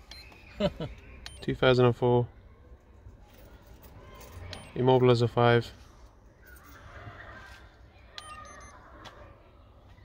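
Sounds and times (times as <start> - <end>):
key programmer beep: 0.0 - 0.4, 1.2 - 1.5, 4.6 - 4.8, 8.2 - 8.7.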